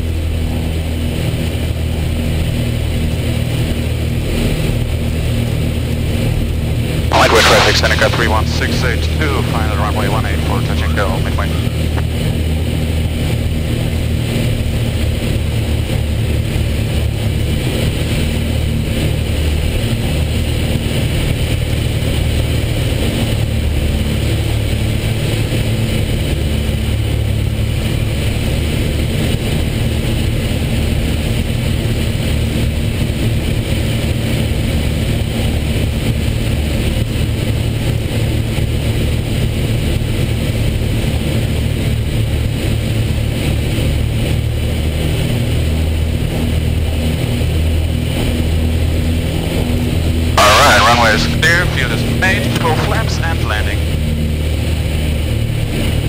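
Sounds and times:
propeller engines droning: 7.1 - 12.8, 50.4 - 54.4.

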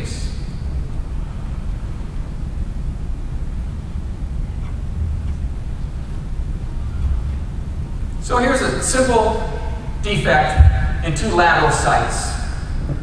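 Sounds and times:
low rumble and hiss of room: 0.0 - 13.0.

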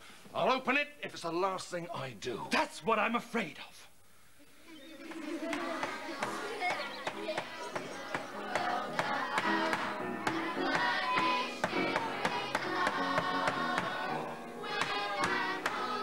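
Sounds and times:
children's choir singing: 4.7 - 16.0
piano: 5.6 - 16.0.

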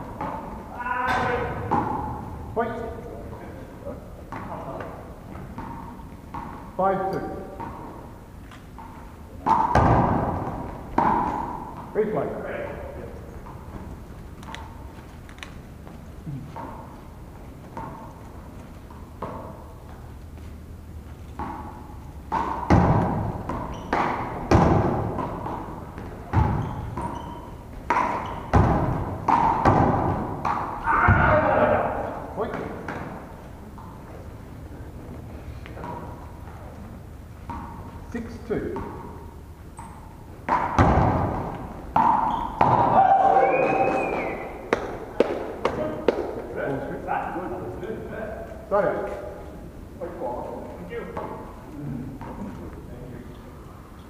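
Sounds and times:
ball thudding against wall and floor: 0.1 - 2.4, 4.3 - 12.6, 21.3 - 31.8, 39.8 - 43.2, 44.7 - 46.5.

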